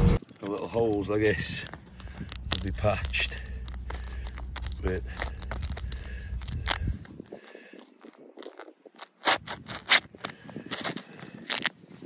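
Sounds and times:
plastic wrap crackling: 0:00.2 - 0:12.0.

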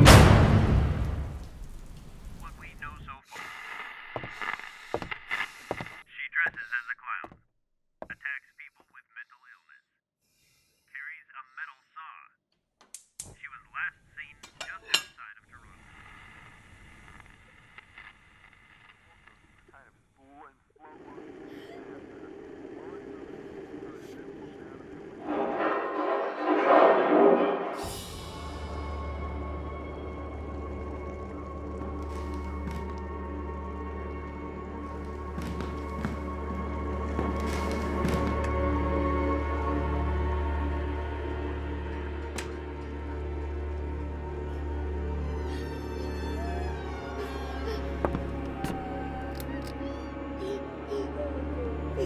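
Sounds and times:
rain-like hiss: 0:00.9 - 0:03.0
steady low drone: 0:21.1 - 0:52.0
horror music sting: 0:25.0 - 0:31.8.

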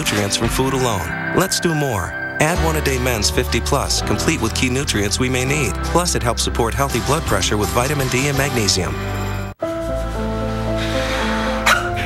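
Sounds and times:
commercial background music: 0:00.0 - 0:12.0.

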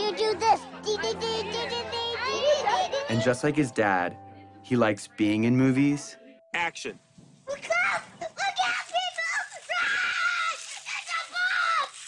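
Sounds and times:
young boy screaming: 0:07.5 - 0:12.0.

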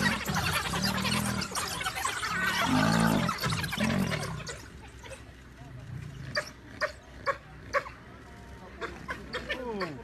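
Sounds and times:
hyenas yelping: 0:00.0 - 0:05.3, 0:06.1 - 0:08.0.

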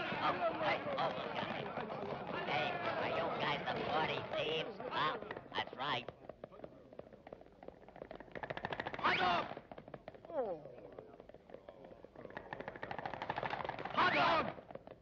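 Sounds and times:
fast even rattle: 0:12.2 - 0:14.0.

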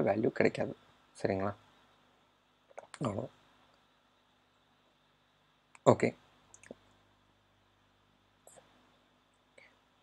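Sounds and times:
person speaking: 0:02.7 - 0:03.4.

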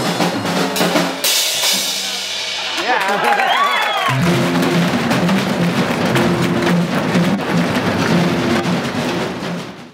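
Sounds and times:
drum kit solo: 0:00.0 - 0:09.9.

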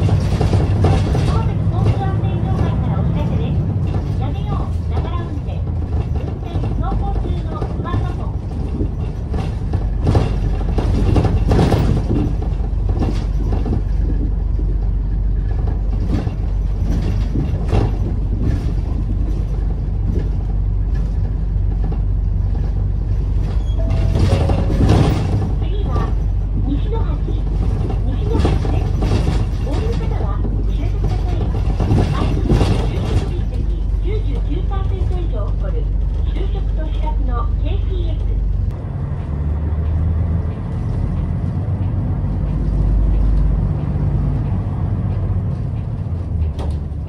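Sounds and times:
bus engine running: 0:00.0 - 0:47.0
knocks and rattles: 0:00.0 - 0:47.0
road noise: 0:00.0 - 0:47.0.

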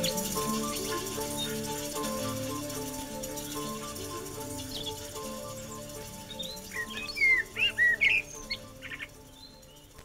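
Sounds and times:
sustained music notes: 0:00.0 - 0:10.0
bird chirping and whistling: 0:05.6 - 0:09.9.

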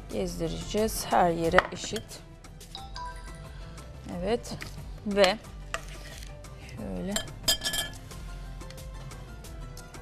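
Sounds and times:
faint background music: 0:00.0 - 0:10.0
bright clink of hard objects: 0:07.2 - 0:08.0.

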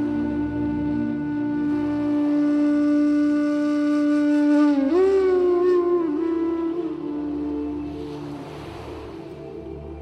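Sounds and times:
slow meditation music: 0:00.0 - 0:10.0.

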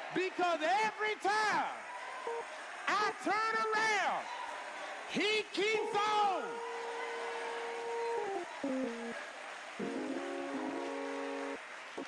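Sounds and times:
congregation noise: 0:02.2 - 0:12.0
church keyboard chords: 0:05.6 - 0:09.1, 0:09.8 - 0:11.6.

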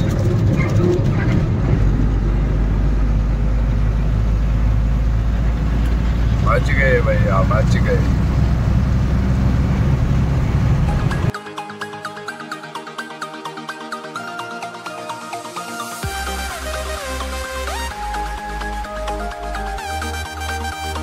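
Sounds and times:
deep steady hum: 0:00.0 - 0:11.3
truck engine and road rumble: 0:00.0 - 0:11.3, 0:15.9 - 0:21.0.

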